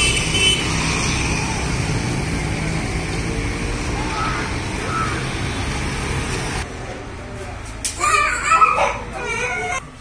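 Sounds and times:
street traffic rumble: 0.0 - 10.0
child calling out: 8.0 - 9.9.

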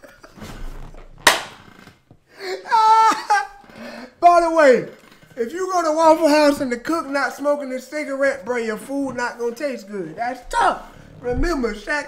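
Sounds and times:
breathy rustling: 0.0 - 2.7, 3.5 - 4.3, 10.7 - 11.3
loud slap: 0.4 - 1.7.

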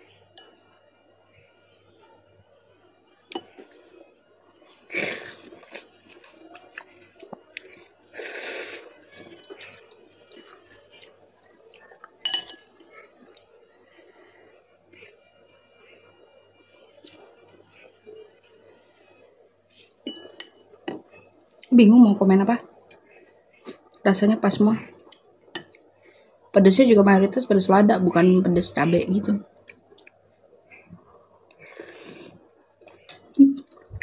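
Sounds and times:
person chewing noodles: 4.6 - 16.0, 29.6 - 30.2, 30.9 - 33.1
metal fork clink: 12.2 - 12.6.

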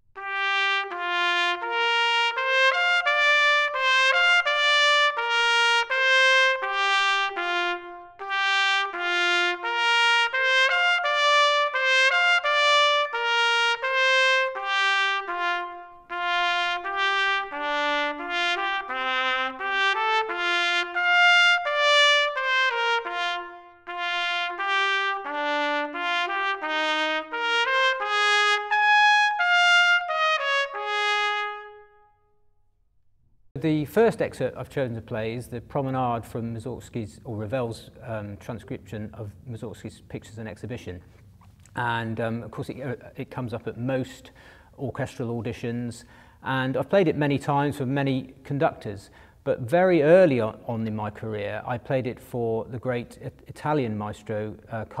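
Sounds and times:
solo trumpet playing fast runs: 0.2 - 32.1.

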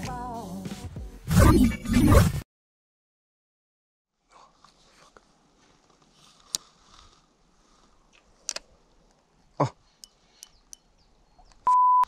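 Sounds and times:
high electronic beep: 11.7 - 12.0.

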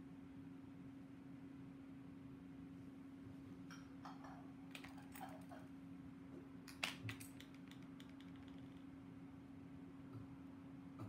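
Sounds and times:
small tools clicking on tabletop: 6.7 - 8.9.

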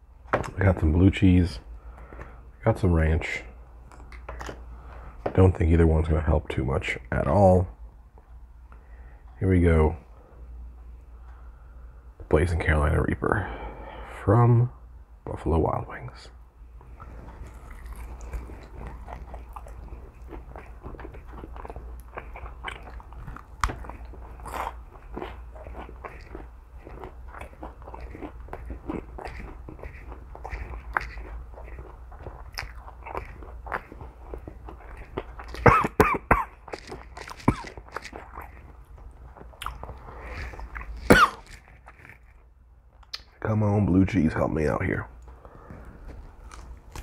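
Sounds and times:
person chewing crunchy food: 16.9 - 43.3, 45.3 - 47.0.

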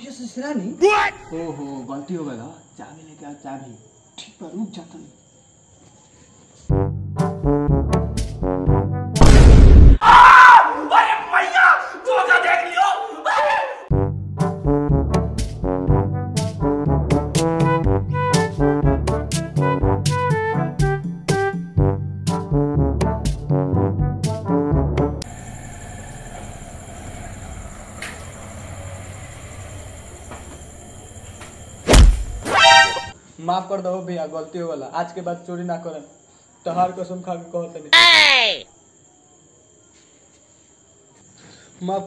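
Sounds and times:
people yelling and wailing: 38.0 - 38.6.

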